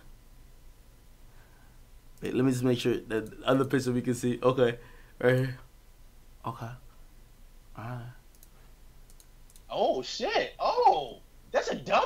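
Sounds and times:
man murmuring: 7.8 - 8.2
computer mouse clicks: 8.3 - 9.7.

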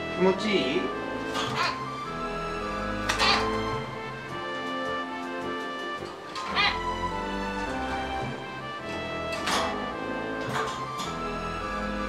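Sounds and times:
background music: 0.0 - 12.0
myna bird call: 3.1 - 3.7, 6.4 - 7.0.

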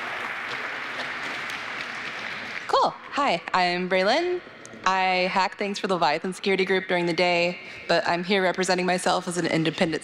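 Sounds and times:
audience applauding: 0.0 - 2.7.

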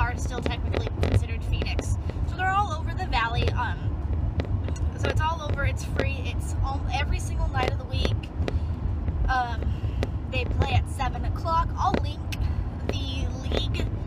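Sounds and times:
woman speaking: 0.0 - 3.9, 4.9 - 8.2, 9.3 - 9.7, 10.4 - 13.9
car road and engine rumble: 0.0 - 14.0.

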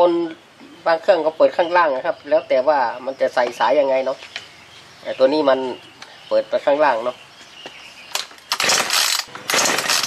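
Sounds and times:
chainsaw engine cranking and firing: 8.1 - 10.0
recoil starter rope whirring: 8.5 - 10.0.

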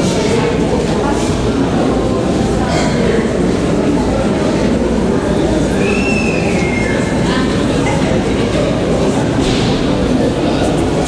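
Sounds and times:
crowd murmur: 0.0 - 11.0
high whistling tone: 5.8 - 7.2.

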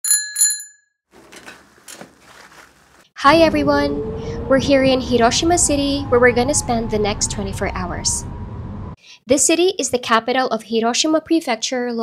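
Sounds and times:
bicycle bell ringing: 0.0 - 0.8.

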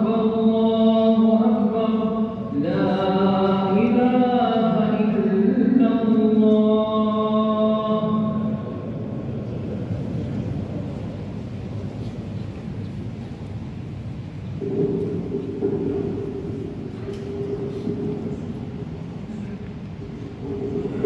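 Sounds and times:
chanted recitation over loudspeakers: 0.0 - 12.8, 14.4 - 21.0
hall noise: 0.0 - 21.0.

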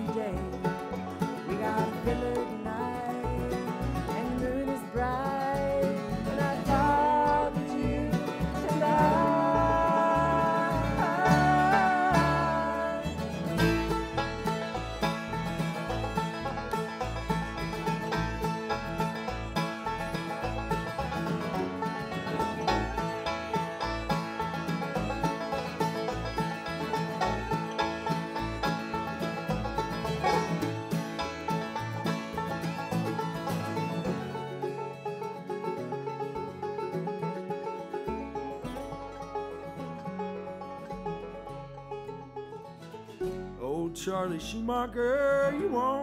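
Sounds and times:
bluegrass band playing: 0.0 - 46.0
pulsing upright bass: 0.0 - 46.0.

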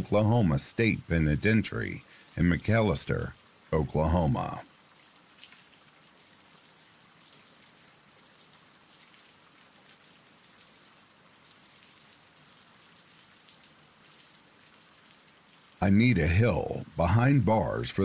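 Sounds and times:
faint steady rain: 0.0 - 18.0.

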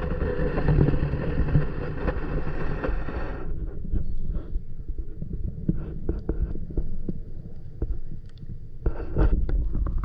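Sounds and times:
muffled underwater rumble: 0.0 - 10.0.

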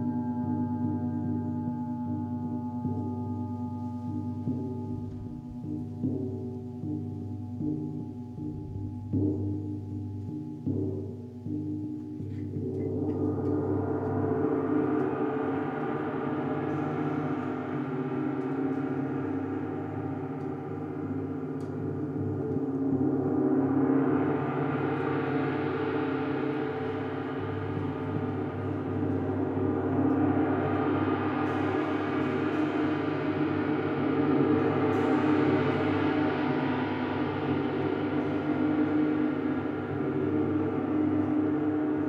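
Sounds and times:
large gongs ringing: 12.2 - 42.0.

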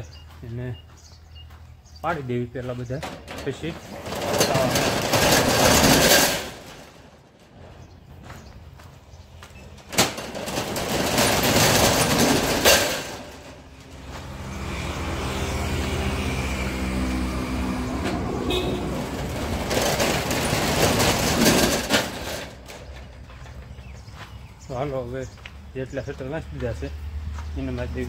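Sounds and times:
metal rolling shutter rattling: 2.8 - 8.3, 9.6 - 23.8.

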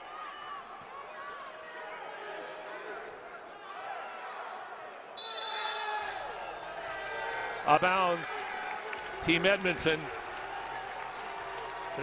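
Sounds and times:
crowd noise: 0.0 - 12.0
referee whistle blast: 5.2 - 5.9.

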